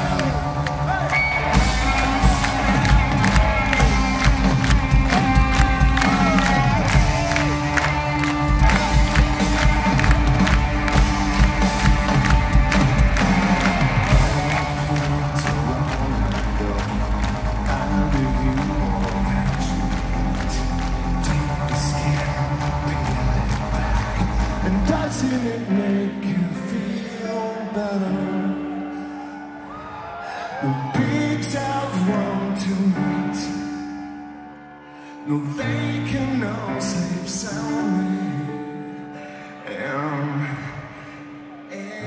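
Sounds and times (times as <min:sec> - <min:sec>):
live rock band playing: 0:00.0 - 0:27.0
crowd cheering: 0:00.0 - 0:34.9.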